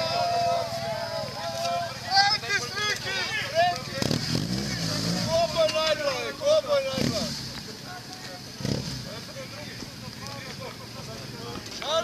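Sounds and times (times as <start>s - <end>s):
motorcycle engine humming: 0.0s - 12.0s
people talking in a group: 0.0s - 12.0s.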